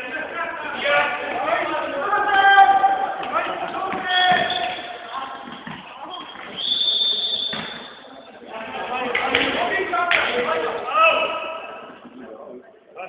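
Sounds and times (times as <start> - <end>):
players calling out: 0.0 - 12.2
ball bouncing on hall floor: 3.1 - 8.0
high whistle blast: 6.4 - 8.1.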